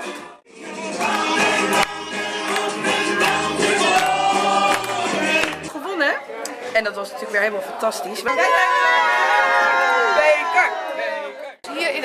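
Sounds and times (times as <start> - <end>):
group singing with instruments: 0.0 - 5.7.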